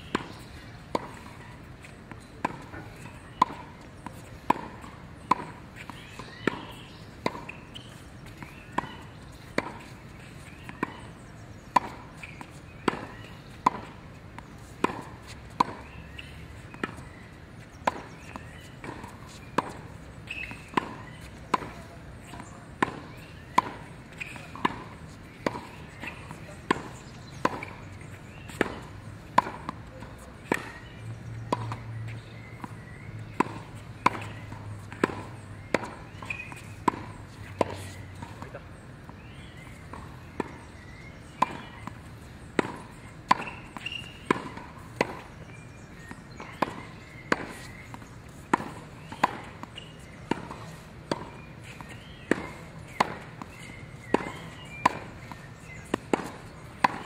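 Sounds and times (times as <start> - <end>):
tennis ball struck by racket: 0.0 - 57.0.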